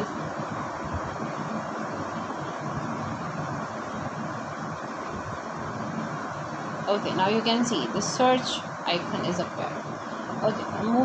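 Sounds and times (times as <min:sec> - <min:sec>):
steady rushing hiss and rumble: 0:00.0 - 0:11.0.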